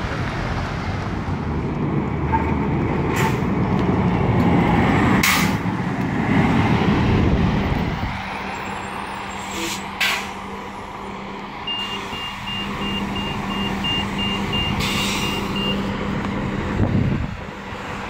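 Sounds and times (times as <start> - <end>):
bus engine pulling away: 0.0 - 18.0.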